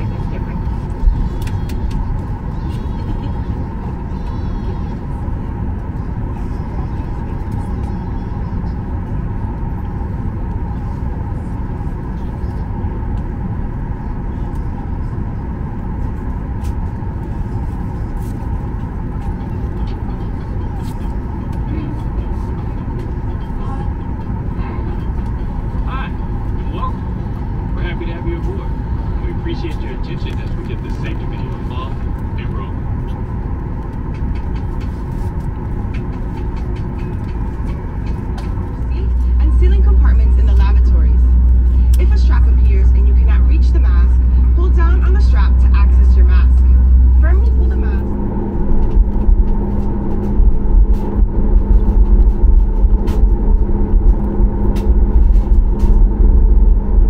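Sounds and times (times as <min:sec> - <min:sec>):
faint unclear voices: 0:00.0 - 0:13.2, 0:17.2 - 0:27.1
airplane cabin rumble: 0:00.0 - 0:57.0.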